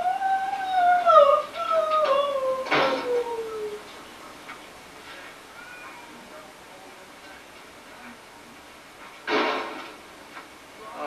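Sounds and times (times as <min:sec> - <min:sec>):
long howl: 0:00.0 - 0:03.9.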